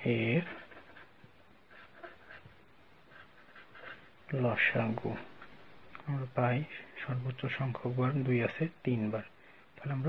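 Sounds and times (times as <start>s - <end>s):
pen scratching on paper: 0.1s - 4.2s.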